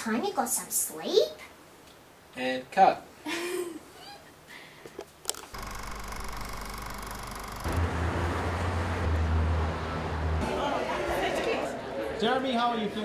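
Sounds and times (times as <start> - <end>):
street traffic rumble: 7.0 - 11.8.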